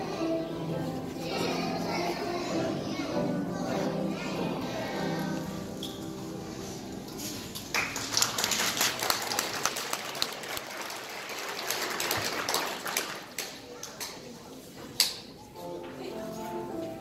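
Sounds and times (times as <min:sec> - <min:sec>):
crowd voices: 0:00.0 - 0:07.6
audience clapping: 0:07.6 - 0:13.7.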